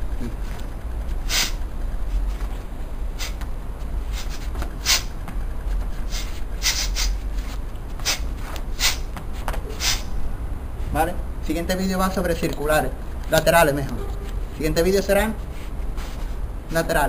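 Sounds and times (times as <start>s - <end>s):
steady low rumble: 0.0s - 17.0s
person exhaling sharply: 9.7s - 10.1s.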